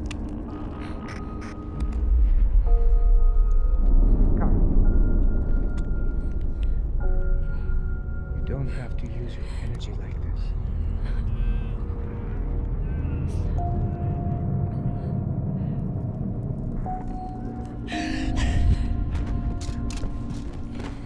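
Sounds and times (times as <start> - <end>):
deep rumble: 0.0 - 21.0.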